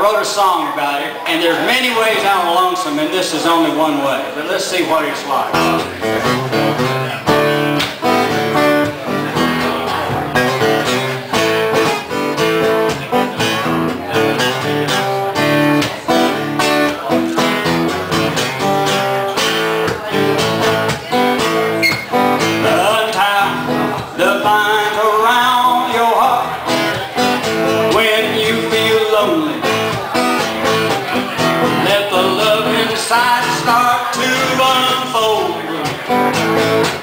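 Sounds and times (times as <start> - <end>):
bending guitar melody line: 1.1 - 37.0
acoustic guitars strumming chords: 5.2 - 37.0.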